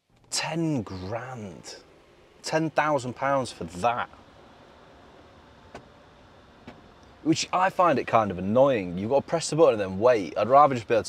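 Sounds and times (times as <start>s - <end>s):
quiet car cabin hum: 0.0s - 11.0s.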